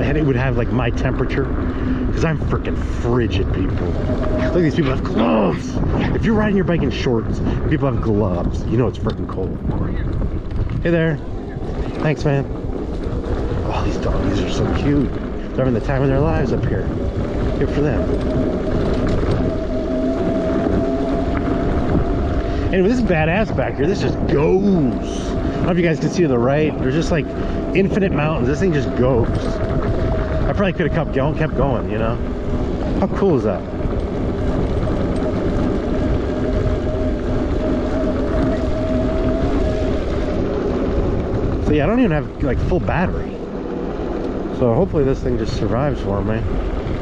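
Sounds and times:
electric bike motor whining: 0:00.0 - 0:08.9, 0:09.7 - 0:47.0
tyres rolling on dirt: 0:00.0 - 0:47.0
wind buffeting microphone: 0:00.0 - 0:47.0.

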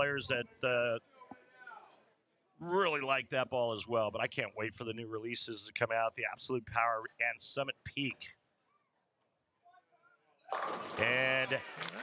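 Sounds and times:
man commentating: 0:00.0 - 0:01.0, 0:02.6 - 0:08.4, 0:11.0 - 0:11.8.

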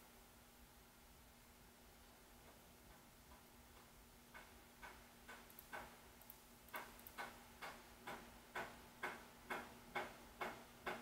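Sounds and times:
faint steady hum: 0:00.0 - 0:11.0
steady ticking clicks: 0:02.4 - 0:11.0.

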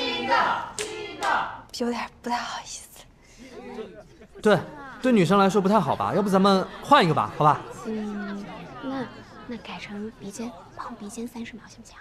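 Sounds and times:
party crowd calling out: 0:00.0 - 0:01.6
hand claps: 0:00.7 - 0:01.4.

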